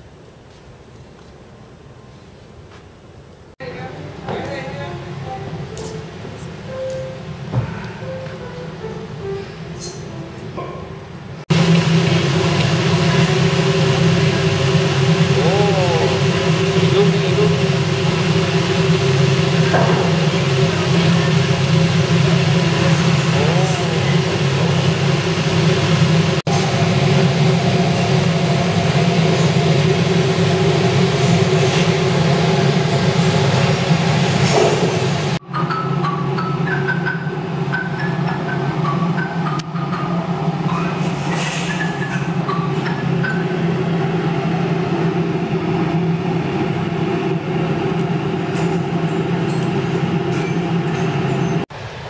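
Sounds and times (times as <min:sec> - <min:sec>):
electric air blower humming: 0:11.4 - 0:35.4.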